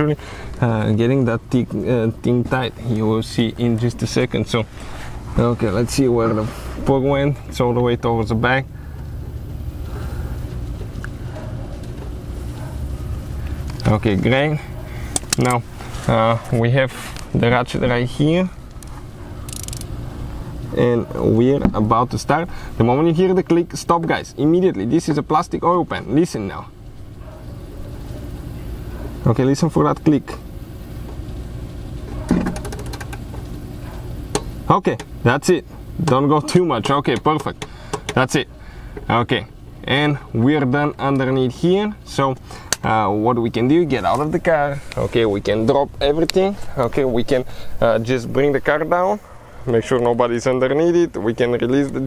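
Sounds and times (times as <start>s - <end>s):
low background rumble: 0.0s - 32.3s
steady low hum: 0.0s - 52.0s
torque wrench clicking: 18.7s - 19.9s.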